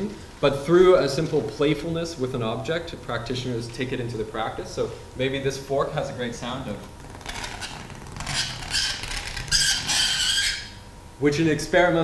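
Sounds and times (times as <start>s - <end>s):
fork squeaking: 7.2s - 10.8s.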